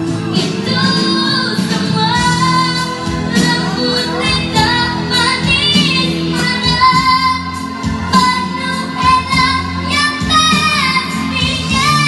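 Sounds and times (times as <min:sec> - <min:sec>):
recorded backing track: 0:00.0 - 0:12.0
woman singing through microphone: 0:00.0 - 0:12.0.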